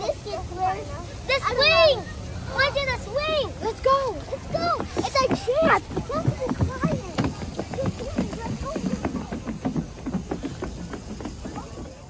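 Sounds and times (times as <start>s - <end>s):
children running on wooden boardwalk: 1.4s - 12.0s.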